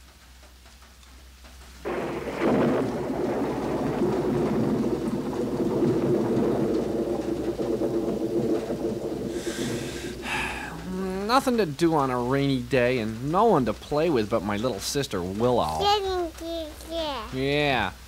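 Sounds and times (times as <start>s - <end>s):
rain: 0.0s - 18.0s
thunder rumbling: 1.8s - 15.4s.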